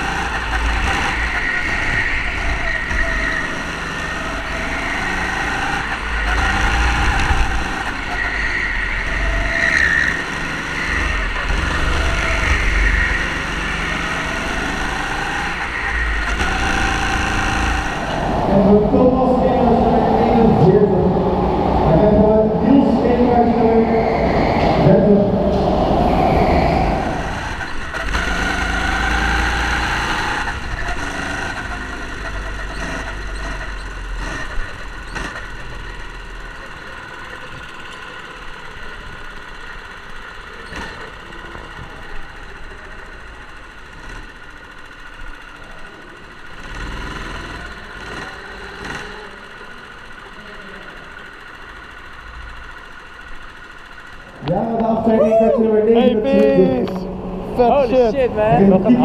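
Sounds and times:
go-kart motor hum: 0.0 - 59.0.

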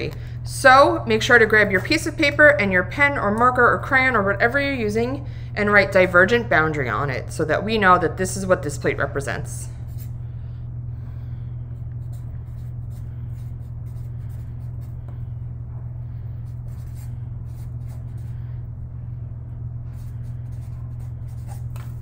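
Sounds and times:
steady low hum: 0.0 - 22.0
marker scratching on paper: 12.0 - 15.0, 16.4 - 18.3, 19.9 - 22.0.

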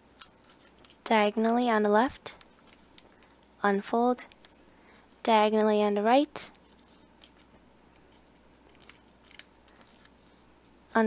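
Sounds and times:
low room hiss: 0.0 - 11.0
paper crinkling: 0.1 - 1.1, 6.6 - 10.5.

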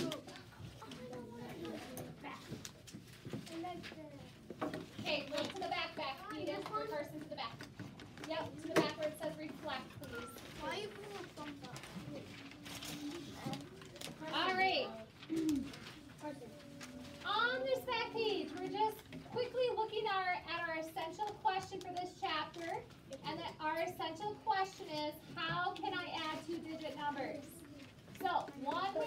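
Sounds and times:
children talking quietly: 0.0 - 29.0.

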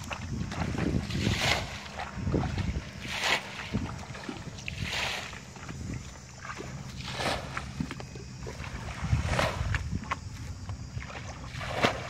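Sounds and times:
wind noise on microphone: 0.0 - 6.2, 6.9 - 12.0
water splashing: 0.0 - 12.0.

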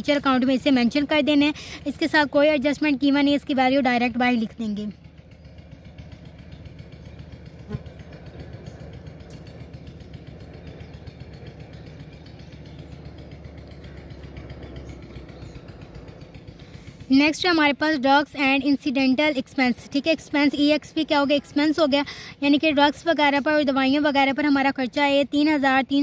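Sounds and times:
engine rumbling: 0.0 - 26.0.

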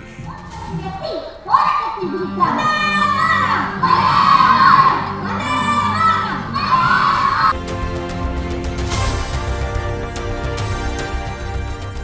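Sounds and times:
children shouting and cheering: 0.2 - 7.6.

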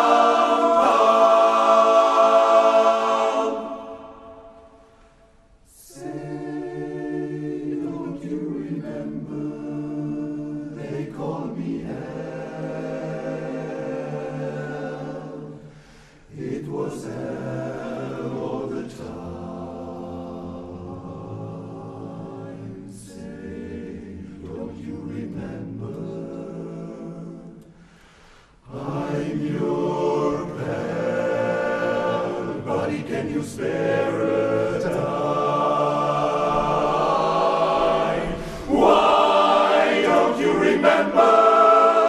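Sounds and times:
men's chorus singing a cappella: 0.0 - 4.9, 5.7 - 42.0.

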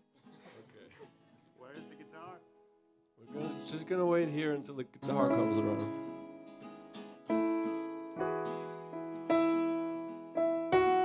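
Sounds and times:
person speaking: 0.6 - 2.5, 3.2 - 6.1
faint acoustic guitar strumming: 1.1 - 11.0.

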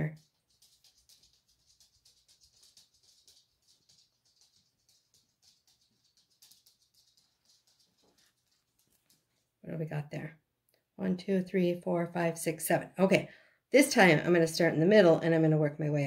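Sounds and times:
felt cut-outs rustling and ticking: 0.0 - 10.2.

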